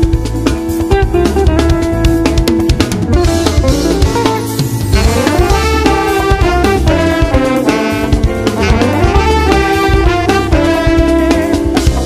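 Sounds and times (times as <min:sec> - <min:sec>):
bass guitar: 0:00.0 - 0:12.0
drum kit: 0:00.0 - 0:12.0
electric guitar melody: 0:00.0 - 0:12.0.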